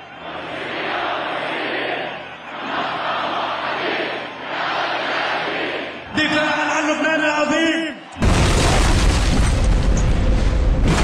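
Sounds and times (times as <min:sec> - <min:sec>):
explosion boom and deep rumble: 0:08.2 - 0:11.0.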